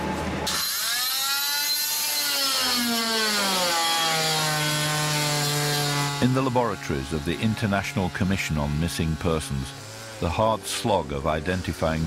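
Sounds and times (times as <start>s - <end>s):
power tool motor whine: 0.3s - 12.0s.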